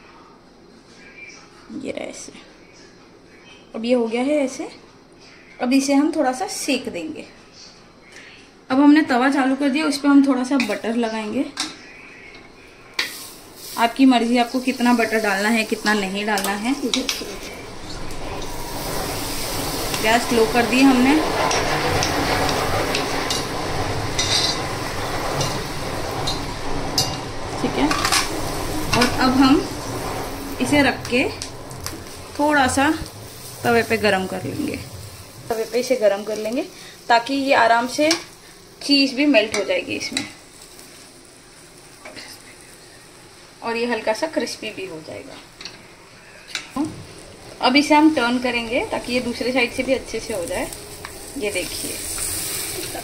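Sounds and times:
butter sizzling in a pan: 0:12.6 - 0:53.0
wooden spatula scraping: 0:14.4 - 0:37.0.

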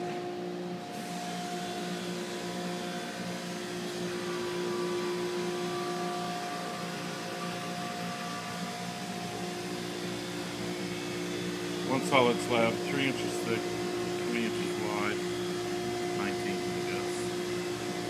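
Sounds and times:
steady mechanical hum: 0:00.0 - 0:18.0.

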